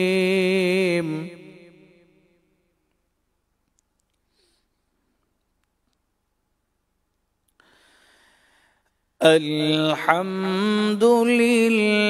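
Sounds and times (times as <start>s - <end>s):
man chanting: 0.0s - 2.0s, 9.2s - 12.0s.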